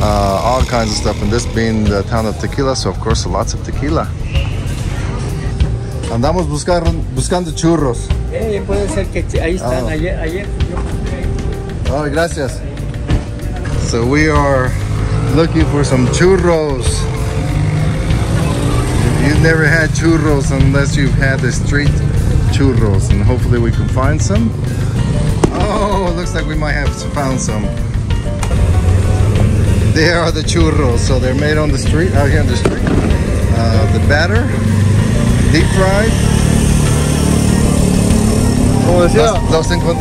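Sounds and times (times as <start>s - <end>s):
motorcycle engine passing: 13.8s - 22.8s, 28.4s - 40.0s.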